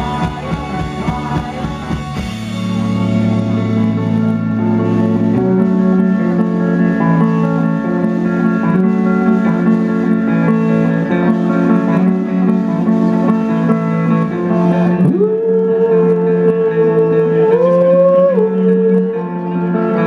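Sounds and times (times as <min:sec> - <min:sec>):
bass and drums: 0:00.0 - 0:19.1
electric guitar: 0:00.0 - 0:20.0.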